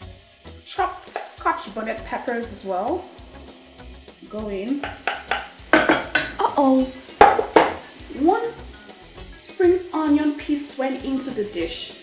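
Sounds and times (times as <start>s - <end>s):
wooden spoon knocking on pot: 4.7s - 7.9s.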